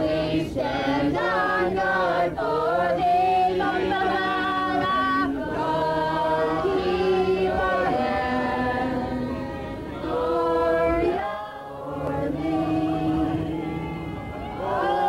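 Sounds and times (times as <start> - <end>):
choir singing sustained chords: 0.0 - 15.0.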